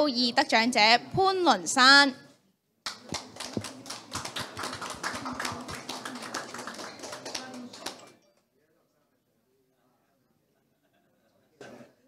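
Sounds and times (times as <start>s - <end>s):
audience applauding: 2.9s - 8.1s.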